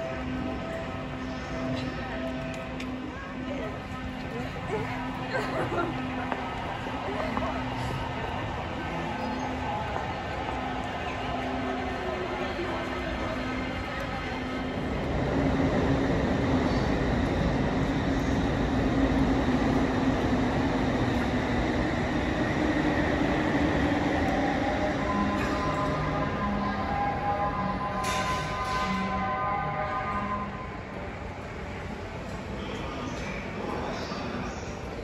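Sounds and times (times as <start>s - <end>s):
electric train passing: 0.0s - 35.0s.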